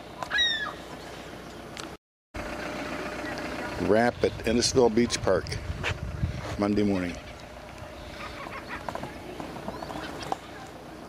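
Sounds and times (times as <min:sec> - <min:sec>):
outdoor noise: 0:00.0 - 0:11.0.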